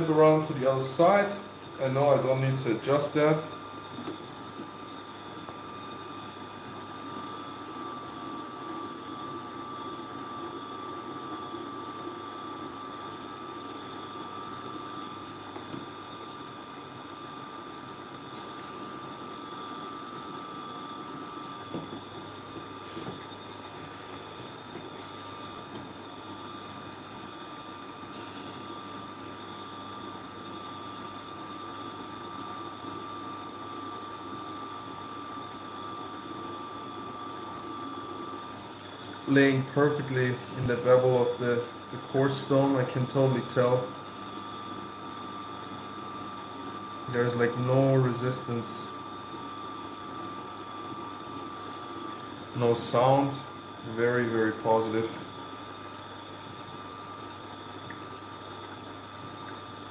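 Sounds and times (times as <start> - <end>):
sharpening machine whining: 18.4 - 21.7.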